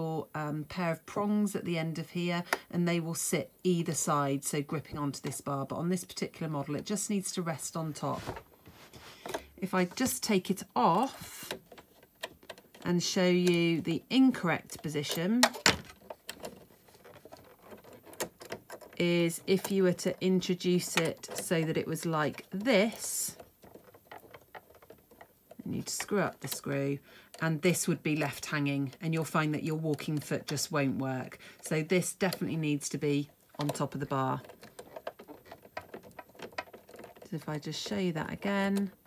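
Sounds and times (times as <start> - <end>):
light scratching: 4.0 - 39.0
small plastic and metal clicks: 32.2 - 37.4.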